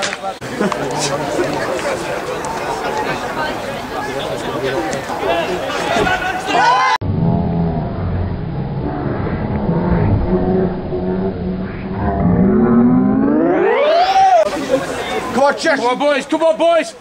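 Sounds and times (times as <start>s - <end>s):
low drone rising in pitch: 7.0s - 14.5s.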